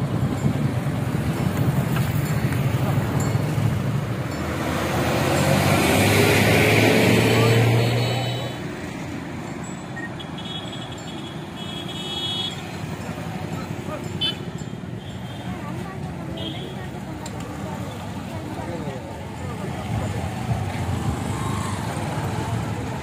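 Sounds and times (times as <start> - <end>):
street noise: 0.0 - 23.0.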